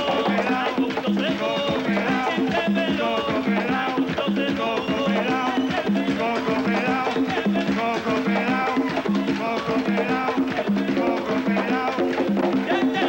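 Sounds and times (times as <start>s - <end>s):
conga drums playing: 0.0s - 13.0s
people singing: 0.0s - 13.0s.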